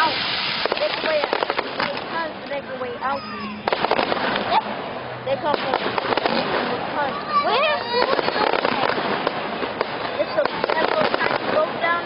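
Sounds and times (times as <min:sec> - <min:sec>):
fireworks bangs and crackling: 0:00.0 - 0:02.7, 0:03.6 - 0:12.0
crowd voices: 0:00.0 - 0:12.0.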